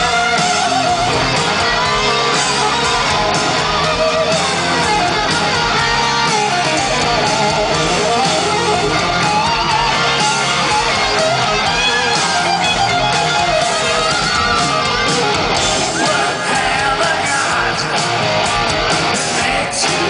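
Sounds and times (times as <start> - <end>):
electric guitar bending pitch: 0.0 - 20.0
loud hard rock band: 0.0 - 20.0.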